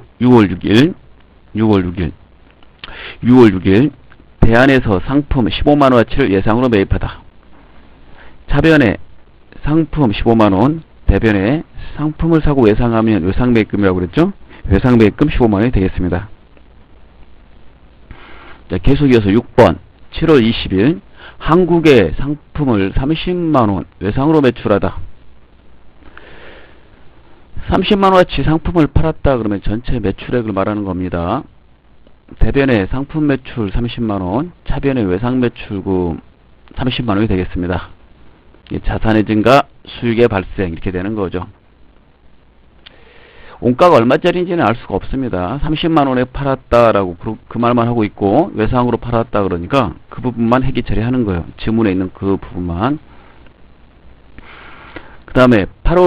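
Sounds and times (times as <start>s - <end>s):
background hiss: 0.0s - 56.0s
faint room noise: 0.0s - 56.0s
faint click: 2.4s - 3.0s, 42.8s - 43.0s
breath in through nose: 2.8s - 3.2s, 42.9s - 43.6s, 54.4s - 55.2s
breath through the nose: 54.4s - 55.2s.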